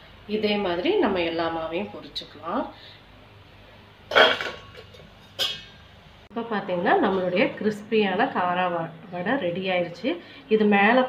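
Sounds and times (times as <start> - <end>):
metal skimmer clanking on bowl: 4.1 - 5.8.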